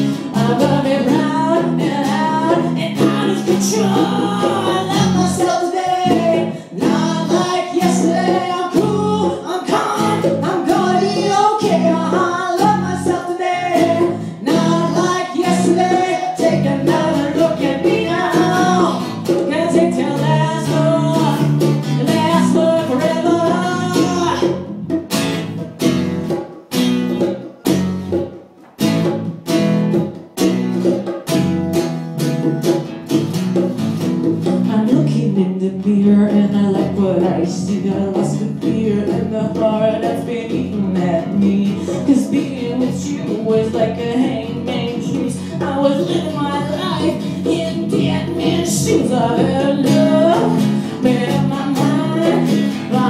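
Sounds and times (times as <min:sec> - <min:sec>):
woman singing: 0:00.0 - 0:24.7, 0:34.5 - 0:53.0
strummed acoustic guitar: 0:00.0 - 0:53.0.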